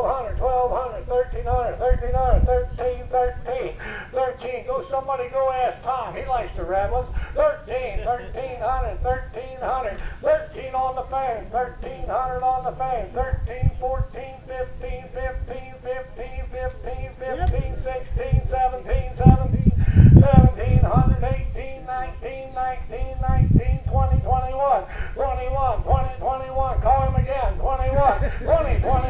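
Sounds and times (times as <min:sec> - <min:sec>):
auctioneer chanting into microphone: 0:00.0 - 0:29.0.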